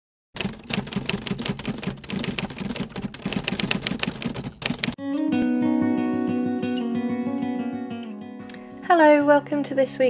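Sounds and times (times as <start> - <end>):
typewriter keys clacking: 0.4 - 5.0.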